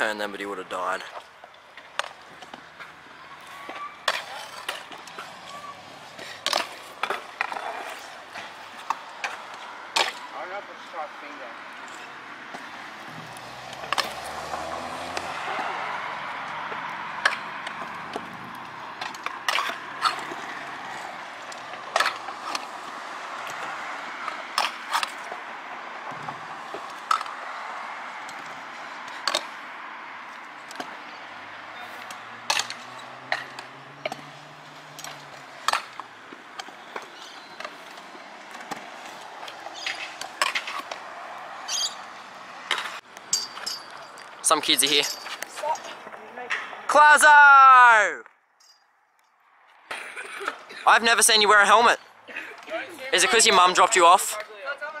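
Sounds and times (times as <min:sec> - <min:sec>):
scooter rolling on concrete: 0:00.0 - 0:46.9.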